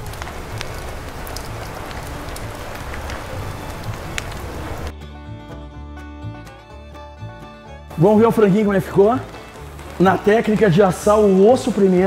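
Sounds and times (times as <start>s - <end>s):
meat sizzling over charcoal: 0.0s - 4.9s, 7.9s - 12.0s
background music: 0.4s - 12.0s.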